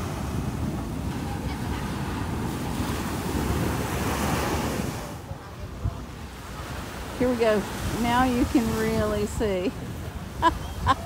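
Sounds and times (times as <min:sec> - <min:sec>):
small waves breaking on sand: 0:00.0 - 0:11.0
wind rumbling on microphone: 0:00.0 - 0:11.0.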